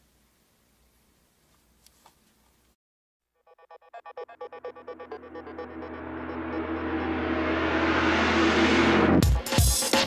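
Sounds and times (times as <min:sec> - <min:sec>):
pulsing synth figure: 0:03.4 - 0:09.2
low drone: 0:03.8 - 0:09.3
rising whoosh: 0:04.3 - 0:09.4.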